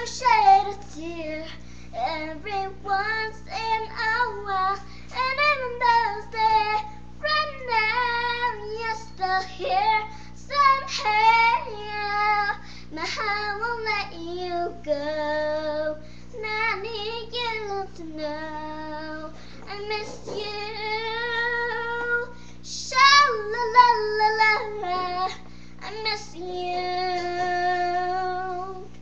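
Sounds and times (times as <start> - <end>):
girl singing a slow ballad: 0.0 - 29.0.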